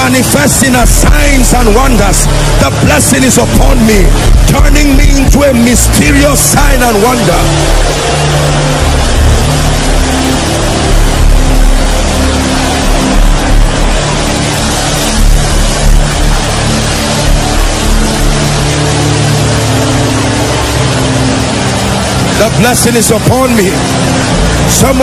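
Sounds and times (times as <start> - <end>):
congregation praying aloud: 0.0 - 7.6
music of long held chords: 0.0 - 25.0.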